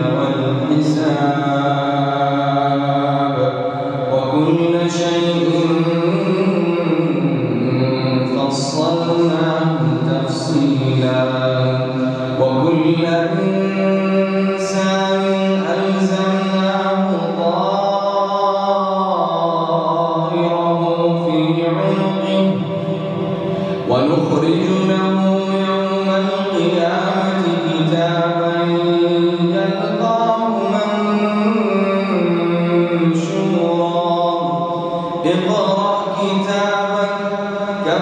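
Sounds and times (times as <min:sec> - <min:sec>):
man reciting melodically: 0:00.0 - 0:38.0.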